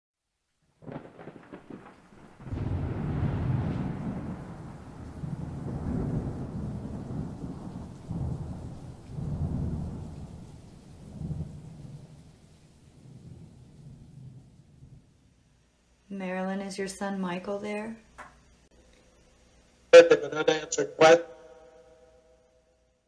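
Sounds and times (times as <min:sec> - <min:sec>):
rain: 0:00.3 - 0:16.1
crackling thunderclap: 0:00.7 - 0:15.4
rolling thunder: 0:00.8 - 0:15.3.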